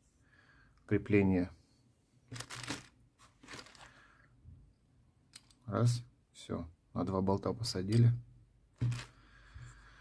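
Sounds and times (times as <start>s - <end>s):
plastic bag crinkling: 2.3s - 4.0s.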